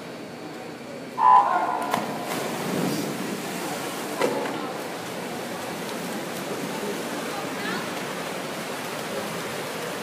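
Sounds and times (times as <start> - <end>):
crowd voices in echoing hall: 0.0 - 8.0.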